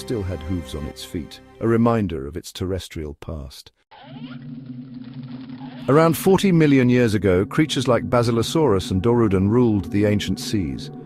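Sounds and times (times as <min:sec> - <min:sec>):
person speaking: 0:00.0 - 0:03.8, 0:05.9 - 0:11.0.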